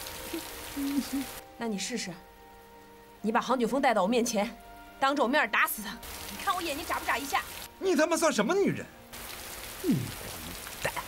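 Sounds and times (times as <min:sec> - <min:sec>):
heavy rain on a tiled roof: 0:00.0 - 0:01.9, 0:06.0 - 0:08.4, 0:09.1 - 0:11.0.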